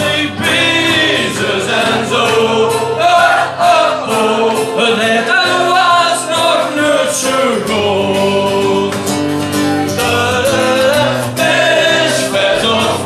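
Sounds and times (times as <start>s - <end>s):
man singing: 0.0s - 13.0s
strummed acoustic guitar: 0.0s - 13.0s.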